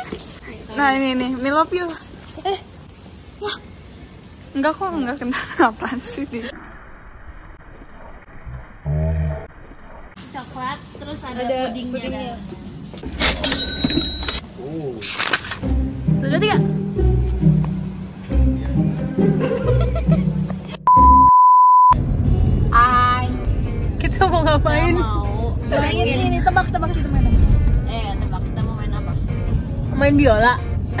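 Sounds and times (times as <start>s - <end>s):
background music with a beat: 15.6s - 21.3s
loud electronic beep: 20.8s - 22.0s.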